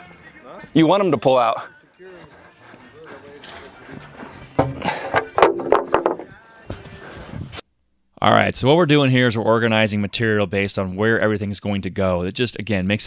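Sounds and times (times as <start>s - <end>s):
men talking: 0.0s - 5.2s
faint knocks: 4.6s - 6.3s.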